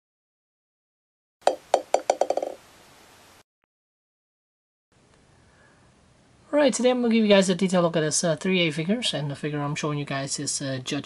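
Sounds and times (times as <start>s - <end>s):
small hard ball bouncing: 1.4s - 2.6s.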